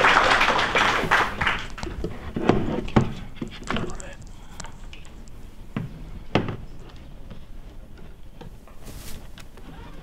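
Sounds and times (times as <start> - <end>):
audience rustling: 0.0 - 4.2.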